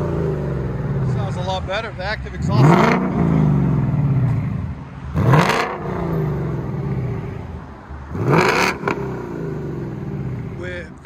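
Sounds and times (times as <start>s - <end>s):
car engine revving: 0.0s - 10.9s.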